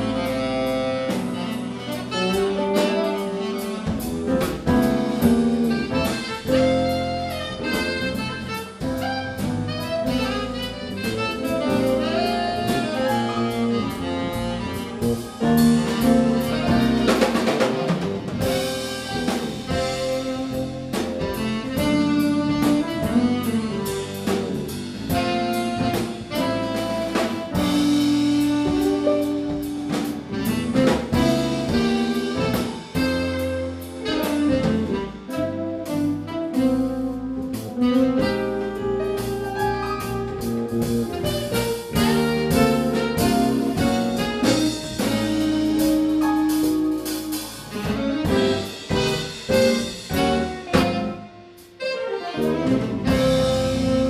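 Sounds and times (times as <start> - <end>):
drum strokes: 0.0 - 54.0
saxophone: 0.0 - 54.0
small jazz band playing: 0.0 - 54.0.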